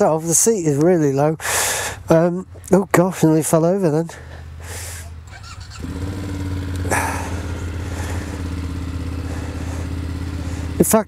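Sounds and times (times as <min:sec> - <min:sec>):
motorcycle engine starting and idling: 0:00.1 - 0:11.0.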